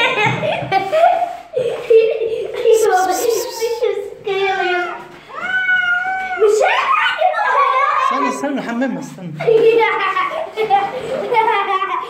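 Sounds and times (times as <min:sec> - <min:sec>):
cat meowing: 0:02.9 - 0:03.8.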